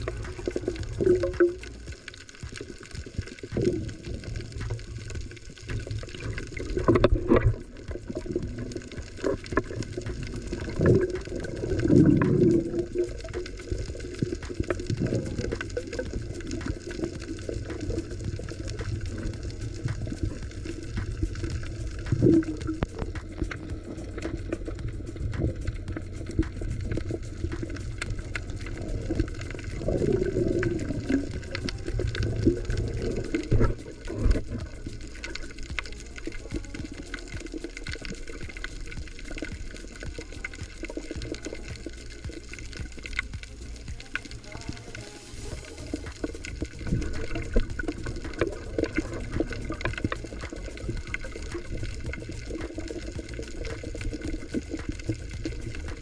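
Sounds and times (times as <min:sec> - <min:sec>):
fine crackle of clicks: 0:00.0 - 0:56.0
low rumble of moving water: 0:00.0 - 0:56.0
underwater gurgling swells: 0:00.0 - 0:56.0.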